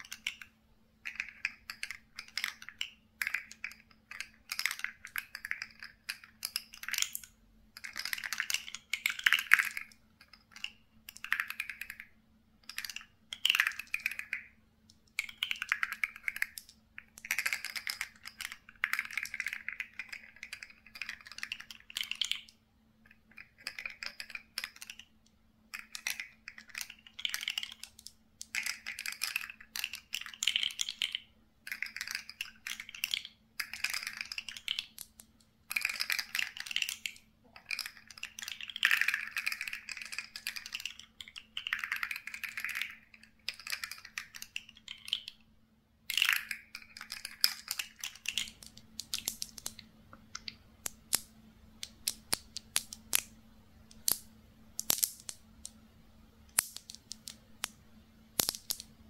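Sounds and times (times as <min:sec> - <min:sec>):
plastic cups tapped clicking: 0:00.0 - 0:25.1, 0:25.7 - 0:45.4, 0:46.1 - 0:54.2, 0:54.8 - 0:55.8, 0:56.5 - 0:57.8, 0:58.4 - 0:59.0.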